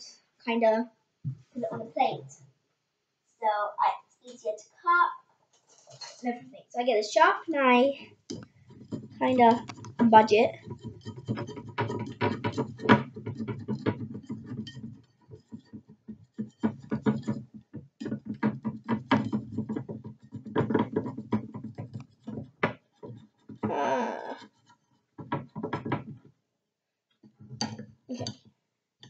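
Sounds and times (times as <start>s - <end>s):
knife scraping a ceramic bowl: 8.4s - 22.4s.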